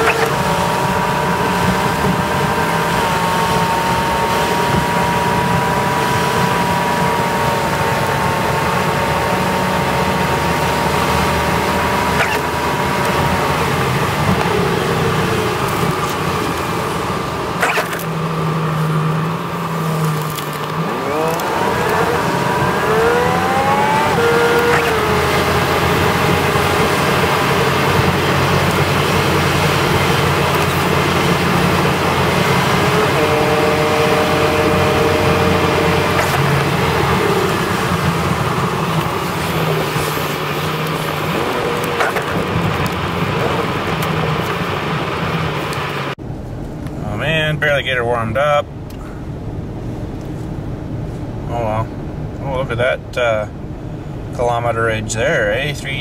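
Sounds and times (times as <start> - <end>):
car engine: 0.0 - 56.0
tyres on slushy road: 0.0 - 56.0.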